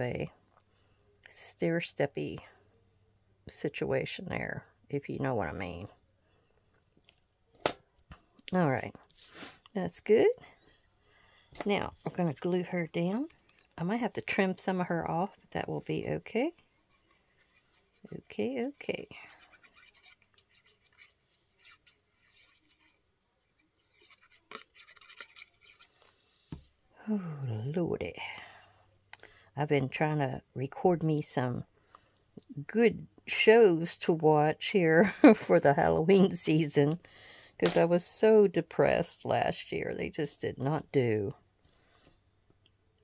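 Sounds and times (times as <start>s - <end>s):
glue nozzle scratching on paper: 16.8s - 23.0s, 23.8s - 26.1s.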